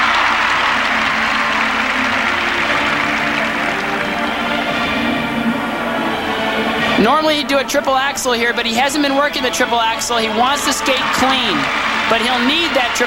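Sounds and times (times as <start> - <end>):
crowd applauding: 0.0 - 7.0, 7.9 - 13.0
program music playing: 0.0 - 13.0.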